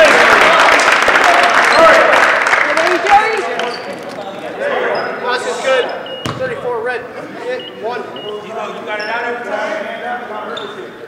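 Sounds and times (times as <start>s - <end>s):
crowd cheering and shouting: 0.0s - 2.2s
sneaker squeaks on hardwood: 5.9s - 6.7s
basketball bouncing on floor: 6.2s - 6.6s.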